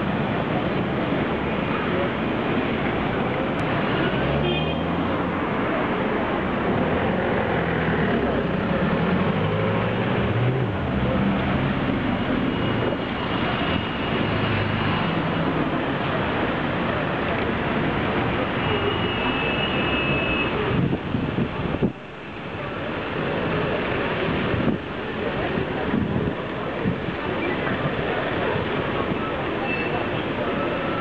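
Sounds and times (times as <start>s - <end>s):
passing vehicles: 0.0s - 31.0s.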